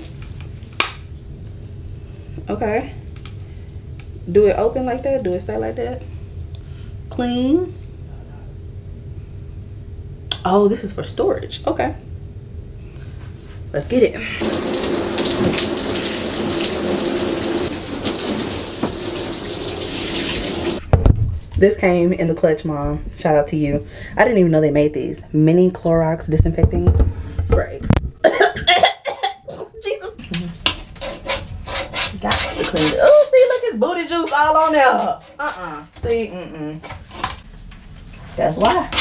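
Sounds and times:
toilet being scrubbed: 14.4 - 20.8, 30.7 - 35.8
water running from sink tap: 14.4 - 20.8.

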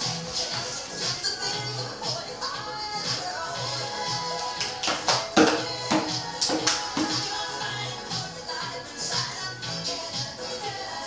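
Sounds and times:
music from a television: 0.0 - 11.0
sharp percussive hits: 5.1 - 7.4.

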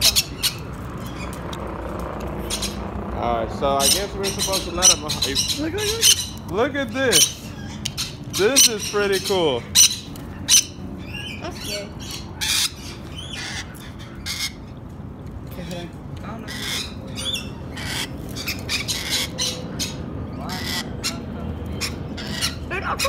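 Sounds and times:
parrots squawking: 0.0 - 15.0, 15.7 - 23.0.

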